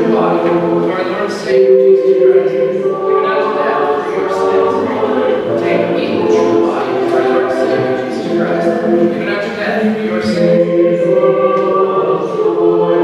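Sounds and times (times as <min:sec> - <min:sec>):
choir singing a hymn: 0:00.0 - 0:13.0.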